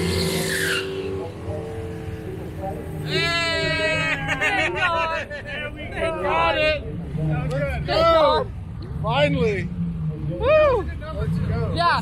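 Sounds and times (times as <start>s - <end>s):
car engines idling: 0.0s - 12.0s.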